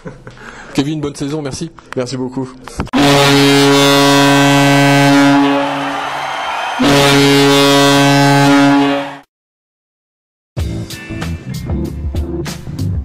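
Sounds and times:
deep goal horn blasts: 0:03.0 - 0:06.0, 0:06.8 - 0:09.3.

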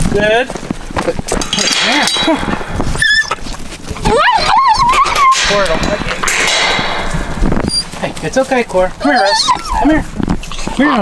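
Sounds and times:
puppy crying harshly: 0:03.0 - 0:03.4, 0:04.0 - 0:05.4, 0:09.0 - 0:11.0.

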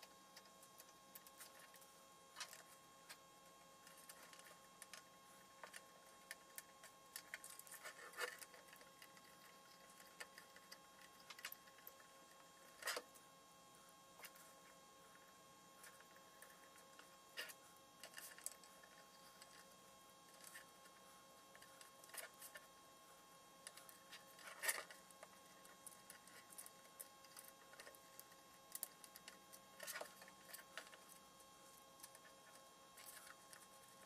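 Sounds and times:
faint steady whine: 0:00.0 - 0:34.0.

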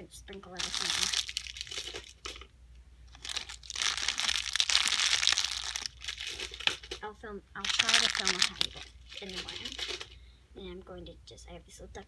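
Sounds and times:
plastic candy wrappers crinkling: 0:00.4 - 0:02.5, 0:03.1 - 0:10.2.

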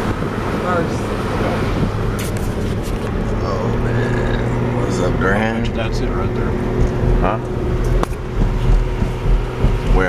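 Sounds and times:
car engine and road noise: 0:00.0 - 0:10.0
indistinct voices: 0:03.0 - 0:10.0.

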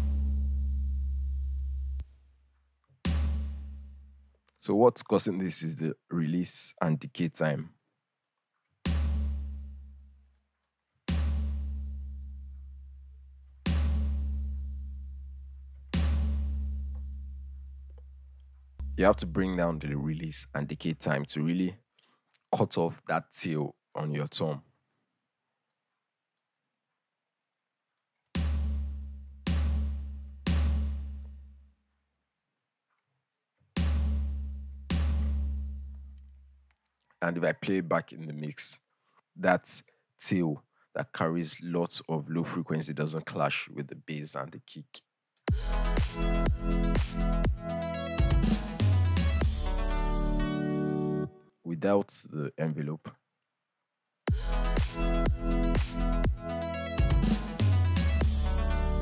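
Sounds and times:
electronic tom hits: 0:03.1 - 0:03.8, 0:08.9 - 0:09.6, 0:11.1 - 0:12.0, 0:18.8 - 0:19.6
tom drum hits with deep sub tail: 0:18.8 - 0:19.6.

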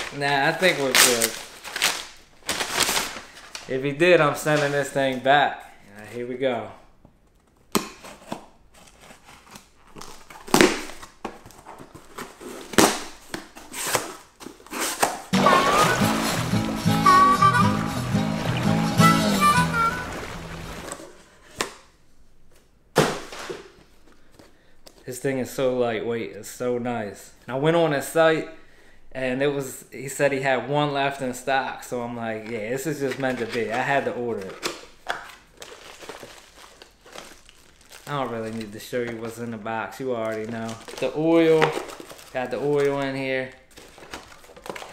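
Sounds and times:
short piece of music: 0:15.3 - 0:20.9.

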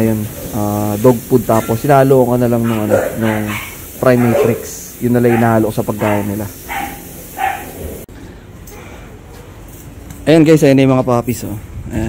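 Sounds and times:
dog yipping: 0:01.5 - 0:01.9, 0:02.6 - 0:07.8.

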